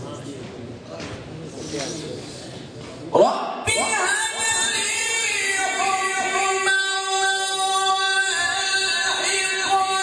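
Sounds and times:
faint voices in a hall: 0.0 - 10.0.

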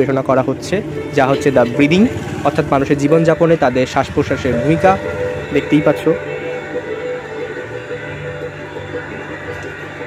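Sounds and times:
music with sustained tones: 0.0 - 10.0.

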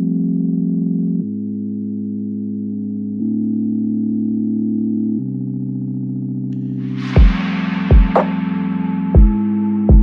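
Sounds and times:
sustained electronic chords: 0.0 - 10.0.

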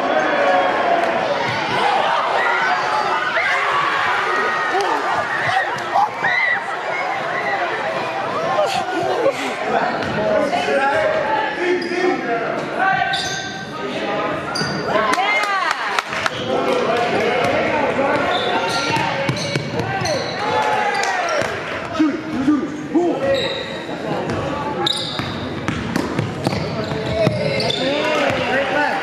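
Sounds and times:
voices echoing in gym: 0.0 - 29.0
sneakers squeaking: 11.8 - 12.2, 13.0 - 13.7, 14.5 - 15.0, 16.3 - 21.6, 23.2 - 28.6.

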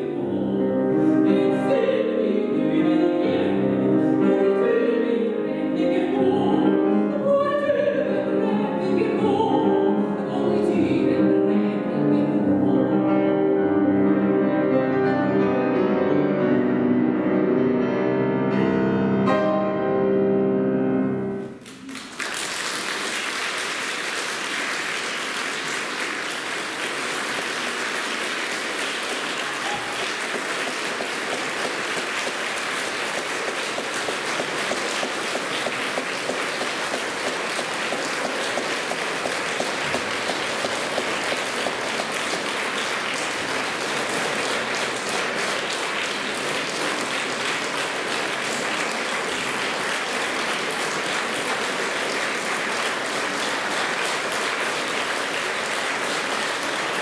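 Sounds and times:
piano chord: 11.2 - 21.6
audience applause: 21.6 - 57.0.

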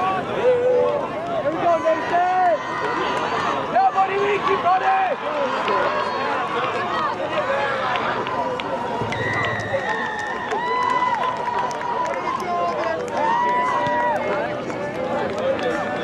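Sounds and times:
steady high tone: 9.0 - 10.4.

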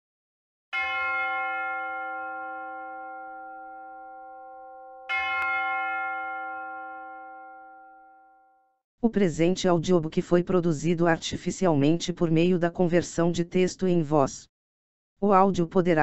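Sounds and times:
bell-like chime ringing: 0.8 - 8.8.

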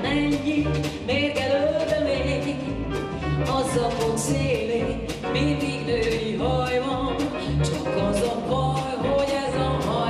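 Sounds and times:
walking double bass: 0.0 - 10.0
woman singing into a microphone: 0.0 - 10.0.

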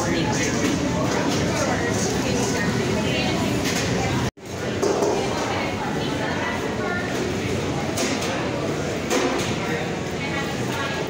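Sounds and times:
many voices talking: 0.0 - 11.0.

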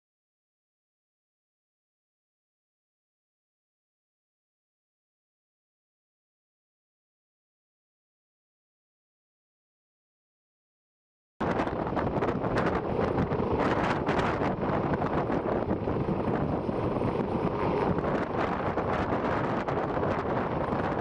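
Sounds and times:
helicopter running: 11.4 - 21.0
wind rushing across microphone: 11.4 - 21.0.

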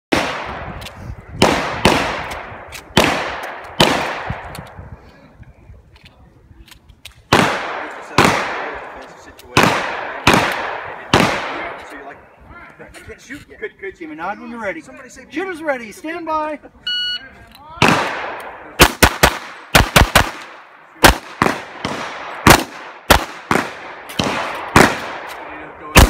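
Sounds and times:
handgun shots echoing: 1.4 - 4.8.

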